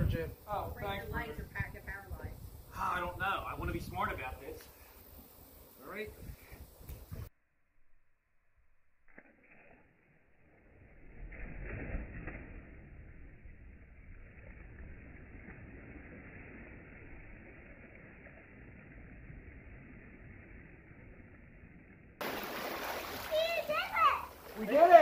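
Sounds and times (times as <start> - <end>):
slow-motion splash into pool: 9.0 - 24.6
splashing water: 9.1 - 21.6, 22.2 - 25.0.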